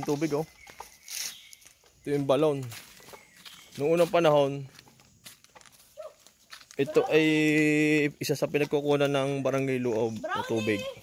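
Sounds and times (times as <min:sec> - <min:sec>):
footsteps in sandals on stone: 0:00.0 - 0:11.0.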